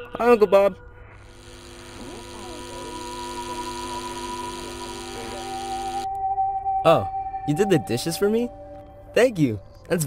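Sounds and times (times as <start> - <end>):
sustained musical drone: 0.0 - 10.0.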